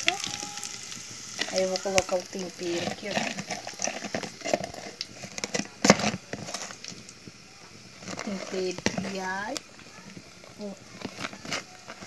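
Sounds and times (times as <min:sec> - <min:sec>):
sausages sizzling: 0:00.0 - 0:12.0
spoon scraping and knocking in container: 0:01.4 - 0:06.8.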